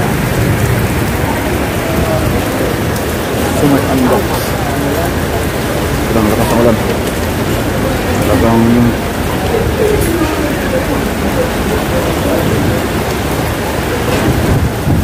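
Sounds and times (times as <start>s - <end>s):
heavy rain pouring: 0.0s - 15.0s.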